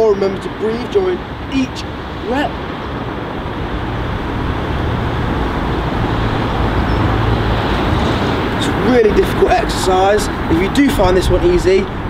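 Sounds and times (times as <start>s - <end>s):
road traffic hum: 0.0s - 12.0s.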